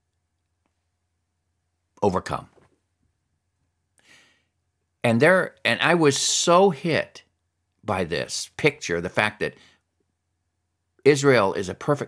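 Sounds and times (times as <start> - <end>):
man breathing: 4.0 - 4.6.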